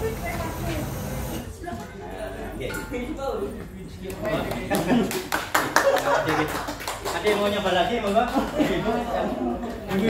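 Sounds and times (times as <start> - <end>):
sharp hand claps: 4.4 - 8.6.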